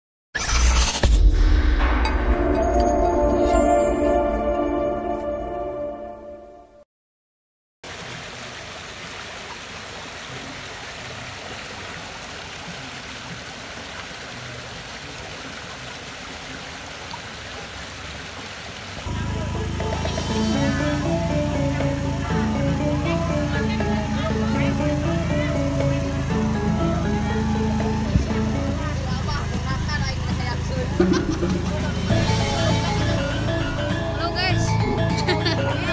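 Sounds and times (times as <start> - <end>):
melody over low drone: 1.9 - 6.8, 19.1 - 35.9
stream rushing over rocks: 7.8 - 19.3.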